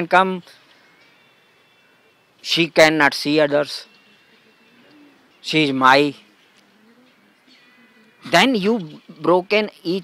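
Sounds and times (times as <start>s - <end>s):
dove cooing: 4.1s - 5.4s, 6.2s - 9.2s
man speaking: 5.4s - 6.2s, 8.2s - 10.0s.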